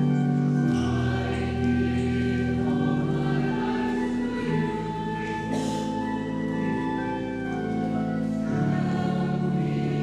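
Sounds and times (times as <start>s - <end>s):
choir singing a hymn: 0.0s - 10.0s
organ chords: 0.0s - 10.0s.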